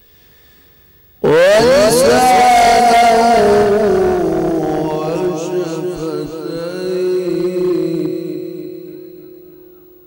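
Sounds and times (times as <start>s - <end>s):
man reciting in long wavering chant: 1.2s - 10.0s.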